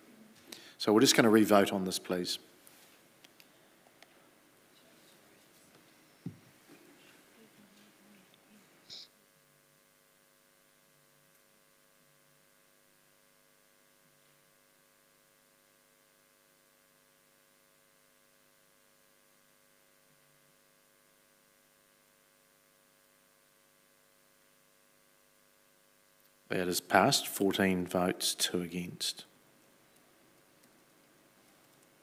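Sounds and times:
faint electrical hum: 0:00.0 - 0:32.0.

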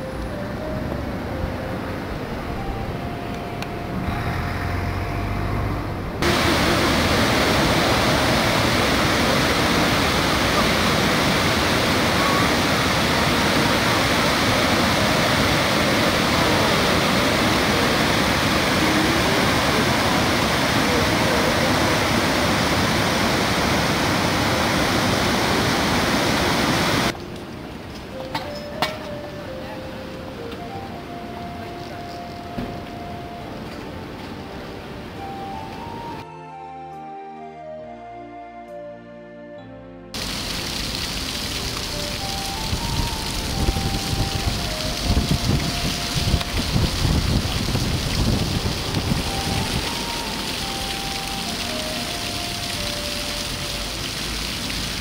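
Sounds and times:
outdoor background noise: 0:00.0 - 0:37.0, 0:40.1 - 0:55.0
water rushing over weir: 0:06.2 - 0:27.2, 0:40.2 - 0:55.0.

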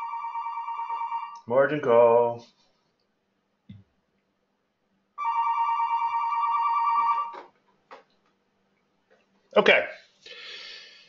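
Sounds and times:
telephone ringing two-tone trill: 0:00.0 - 0:01.4, 0:05.2 - 0:07.4.

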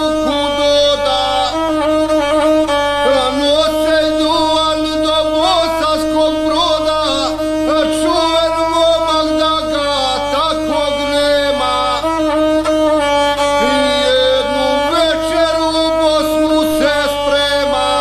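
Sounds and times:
bowed folk fiddle melody: 0:00.0 - 0:18.0.

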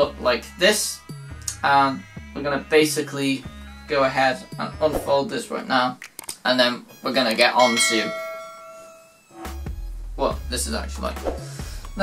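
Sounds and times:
bell-like ding: 0:07.6 - 0:09.3.

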